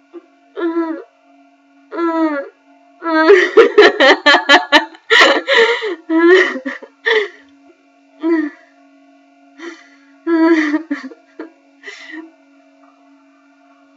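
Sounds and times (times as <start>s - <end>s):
woman whimpering and sobbing: 0.6s - 1.1s, 1.9s - 7.4s, 8.2s - 8.6s, 9.6s - 12.3s
woman laughing through tears: 3.0s - 7.4s, 9.6s - 12.3s.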